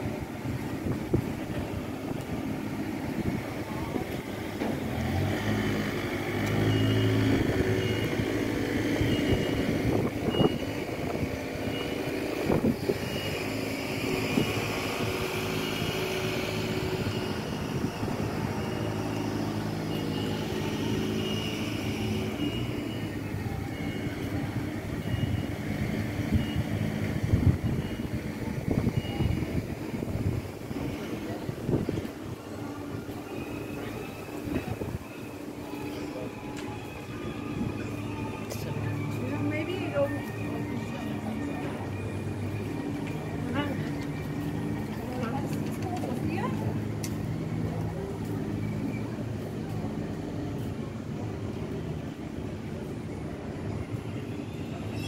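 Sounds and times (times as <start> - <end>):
faint high beep: 6.5 - 17.5.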